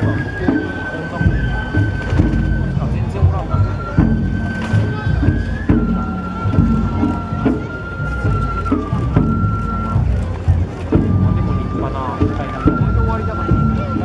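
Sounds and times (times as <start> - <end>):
bamboo flute long notes: 0.0 - 14.0
crowd voices: 0.0 - 14.0
drum strikes: 0.0 - 14.0.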